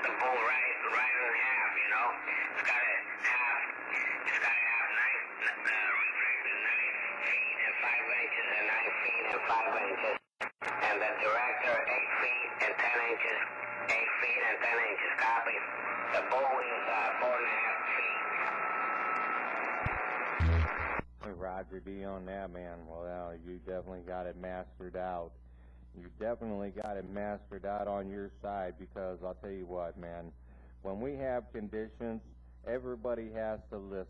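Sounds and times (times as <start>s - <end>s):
muffled voice over radio: 0.0s - 20.6s, 21.2s - 25.3s, 26.0s - 34.0s.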